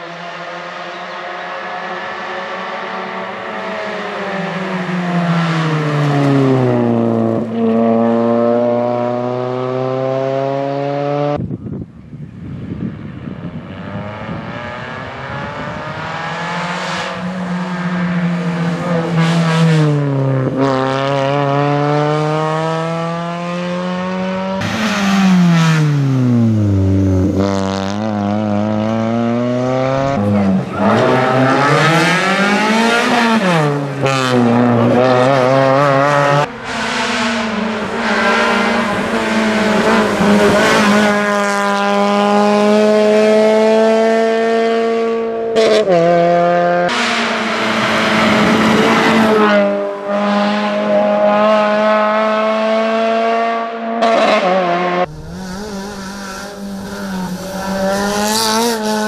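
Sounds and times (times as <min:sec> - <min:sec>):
rally car engine at full throttle: 0:00.0 - 0:59.0.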